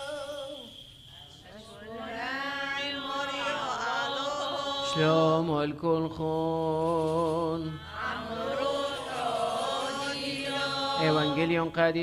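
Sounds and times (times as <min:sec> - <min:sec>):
liturgical chant: 0:00.0 - 0:12.0.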